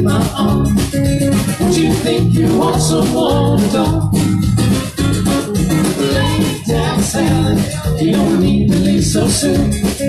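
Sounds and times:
bass line: 0.0s - 10.0s
electric guitar: 0.0s - 10.0s
live band playing country-rock: 0.0s - 10.0s.

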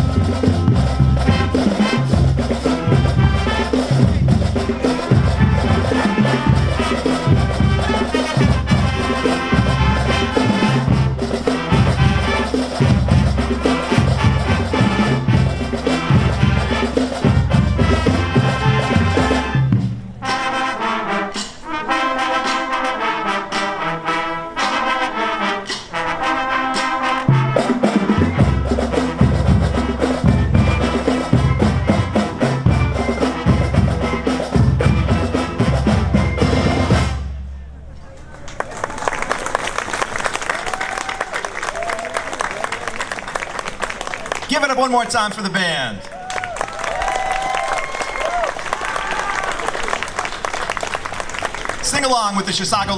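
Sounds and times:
marching band playing: 0.0s - 37.9s, 39.1s - 52.9s.

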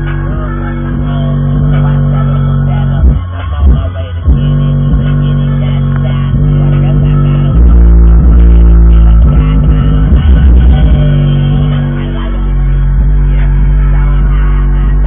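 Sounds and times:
bass-heavy music from subwoofers: 0.0s - 15.0s.

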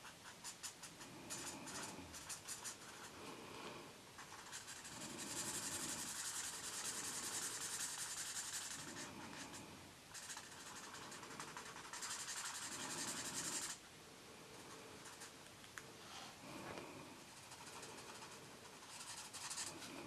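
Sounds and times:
marker rubbing on paper: 0.0s - 3.1s, 4.2s - 13.8s, 14.6s - 15.3s, 17.2s - 19.8s.

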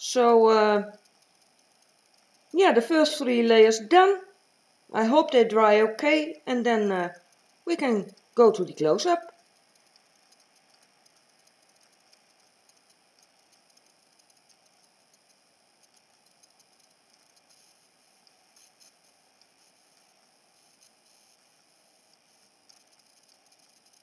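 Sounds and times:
small faint clicks: 0.8s - 2.6s, 7.1s - 24.0s.

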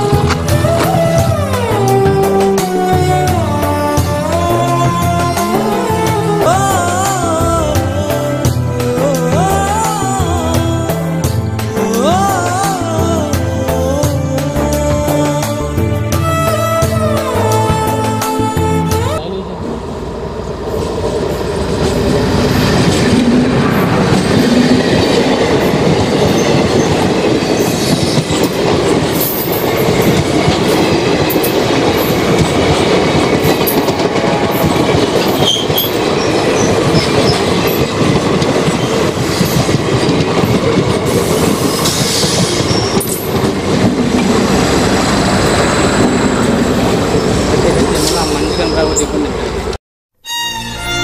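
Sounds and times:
train wheels clattering on rails: 20.5s - 49.8s.

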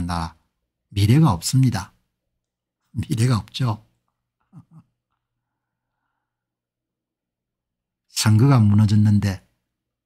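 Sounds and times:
man chuckling softly: 4.4s - 5.2s.

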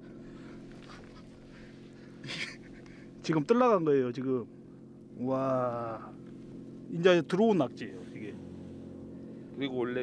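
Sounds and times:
boat machinery humming: 0.0s - 10.0s.

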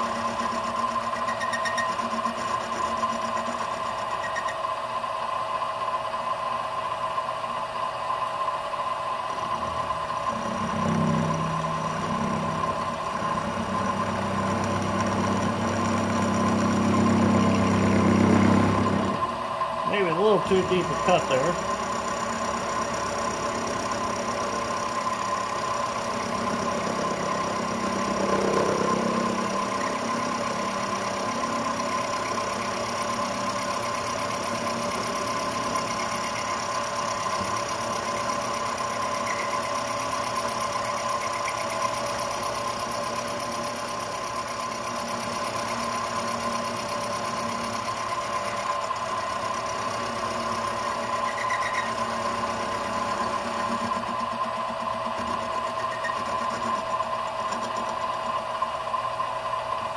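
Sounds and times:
milling machine motor whine: 0.0s - 59.9s
end mill cutting metal: 9.3s - 59.2s.

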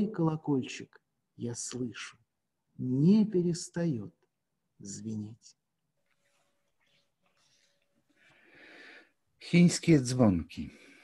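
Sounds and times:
person breathing in: 8.1s - 9.2s.

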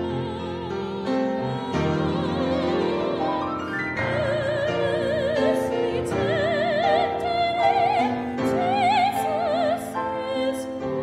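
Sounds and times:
grand piano: 0.0s - 11.0s
soprano singing with vibrato: 0.0s - 11.0s.

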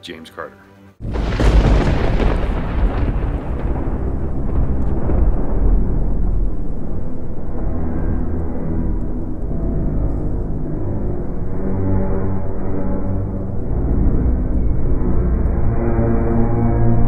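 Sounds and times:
low rumbling boom: 1.0s - 11.6s
dark droning score: 1.0s - 17.0s.

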